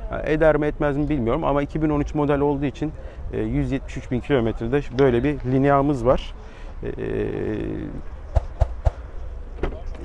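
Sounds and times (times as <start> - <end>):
man's hesitant voice: 6.8 - 8.1.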